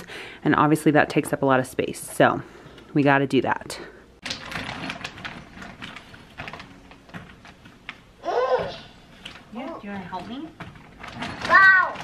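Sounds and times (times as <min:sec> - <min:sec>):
plastic balls clicking together: 0:04.2 - 0:08.0.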